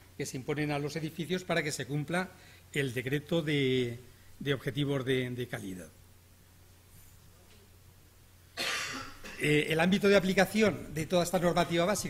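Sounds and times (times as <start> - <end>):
person coughing: 8.6 - 9.6.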